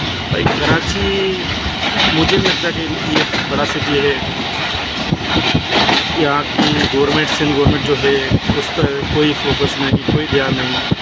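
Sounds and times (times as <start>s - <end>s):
loud rushing noise: 0.0s - 11.0s
man speaking: 0.3s - 4.3s, 6.1s - 11.0s.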